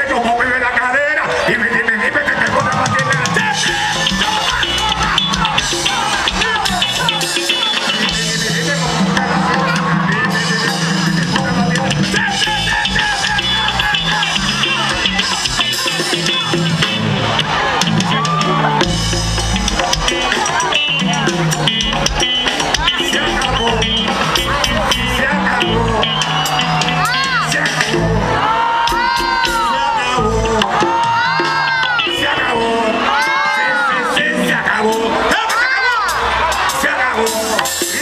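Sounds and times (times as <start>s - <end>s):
live band dance music: 0.0s - 38.0s
person singing: 20.1s - 38.0s.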